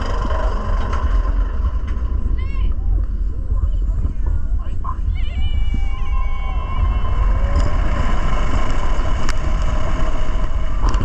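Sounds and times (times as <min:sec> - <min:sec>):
roller coaster train rumbling: 0:00.0 - 0:11.0
wind rushing over microphone: 0:00.0 - 0:11.0
rider screaming: 0:05.0 - 0:08.1.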